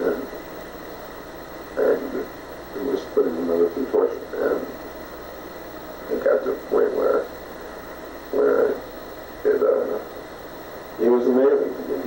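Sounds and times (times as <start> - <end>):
man speaking on old tape: 0.0 - 0.4, 1.6 - 5.0, 5.9 - 12.0.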